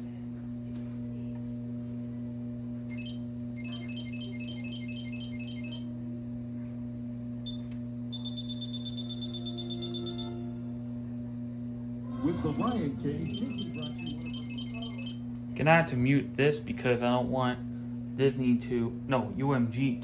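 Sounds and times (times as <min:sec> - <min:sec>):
low electrical hum: 0:00.0 - 0:20.0
high electronic beeps: 0:12.4 - 0:15.2.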